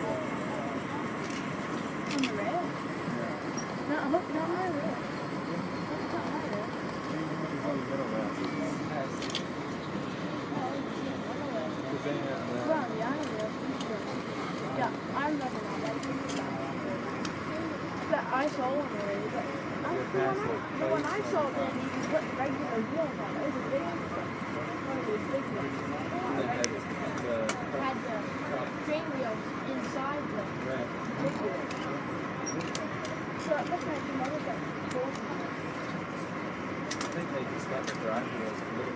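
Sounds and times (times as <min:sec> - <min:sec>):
passengers talking: 0:00.0 - 0:38.9
train coach rolling on rails: 0:00.0 - 0:38.9.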